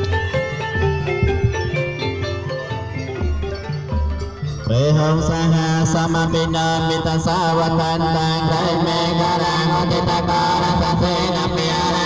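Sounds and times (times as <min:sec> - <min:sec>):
monks chanting through loudspeaker: 0:03.6 - 0:12.0.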